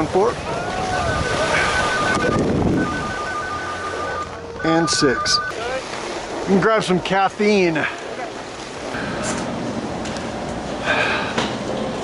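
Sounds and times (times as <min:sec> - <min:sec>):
wind on microphone: 0:00.4 - 0:03.4
steady high tones: 0:00.8 - 0:05.6.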